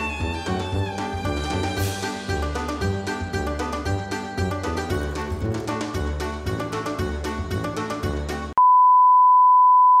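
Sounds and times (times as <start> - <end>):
background music: 0.0 - 8.6
steady test tone beep: 8.6 - 10.0.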